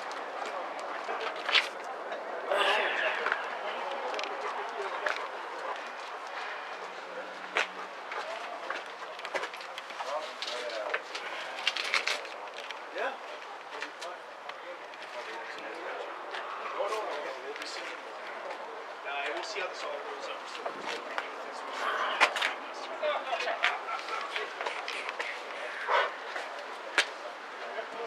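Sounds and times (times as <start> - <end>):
indistinct voices talking: 0.0 - 28.0.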